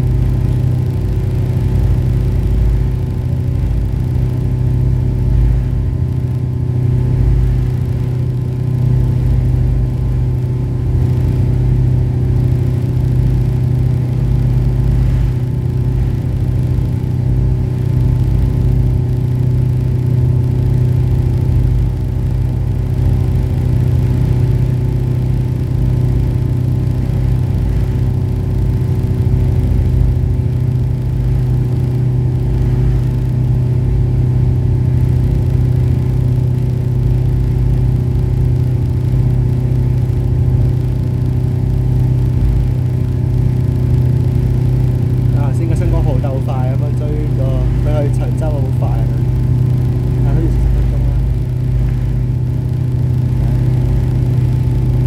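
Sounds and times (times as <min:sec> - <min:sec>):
steady engine tones: 0:00.0 - 0:55.0
ferry engines humming: 0:39.2 - 0:55.0.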